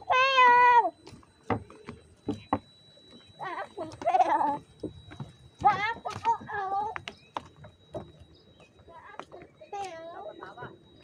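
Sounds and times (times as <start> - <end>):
footsteps on wooden boards: 1.0 - 11.0.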